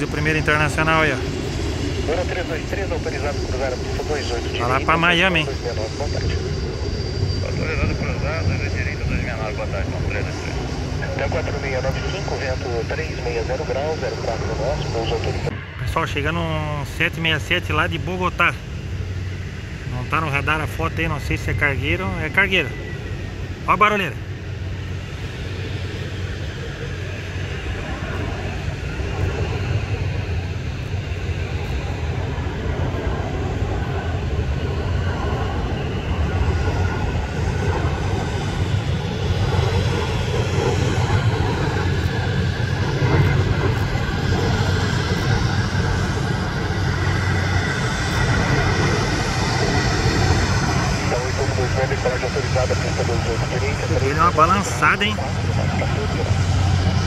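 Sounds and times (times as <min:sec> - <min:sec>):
jet engines roaring: 0:00.0 - 0:57.0.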